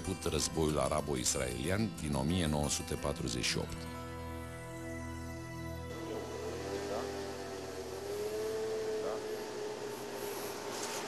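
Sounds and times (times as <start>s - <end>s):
steady humming tone: 5.1s - 11.0s.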